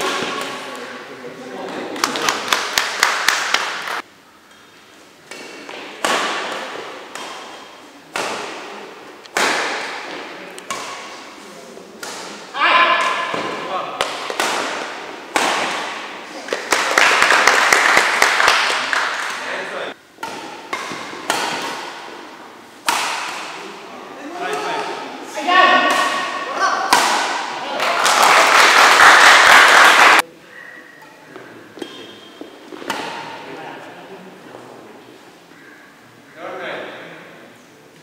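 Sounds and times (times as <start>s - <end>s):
rackets striking shuttlecock: 5.3s - 11.4s, 12.0s - 16.2s, 20.2s - 22.2s, 22.8s - 23.7s, 25.8s - 27.6s, 31.8s - 33.4s
voices of players: 5.4s - 38.0s.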